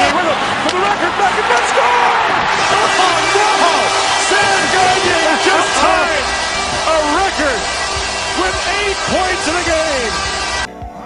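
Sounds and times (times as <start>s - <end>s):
excited voices: 0.0s - 10.6s
arena noise: 0.0s - 11.0s
background music: 0.0s - 11.0s.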